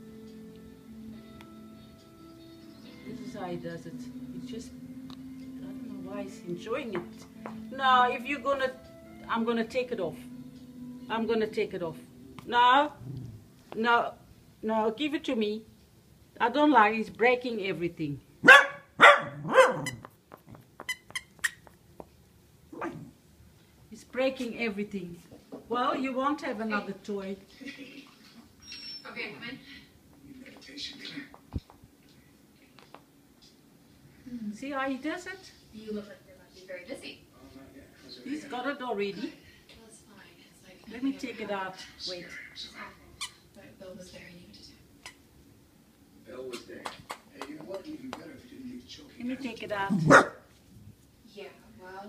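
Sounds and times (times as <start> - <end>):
squeaky toy squeaks: 19.8 - 20.1, 20.8 - 21.7.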